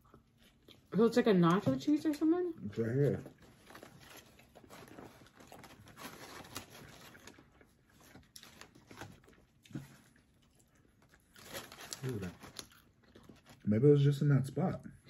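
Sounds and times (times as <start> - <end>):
bread tearing in paper wrapper: 3.6 - 10.0, 11.1 - 13.7.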